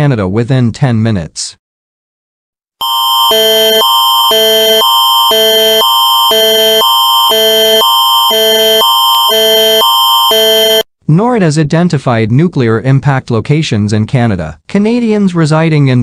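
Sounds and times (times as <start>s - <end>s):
electronic alert tone: 2.8s - 10.8s.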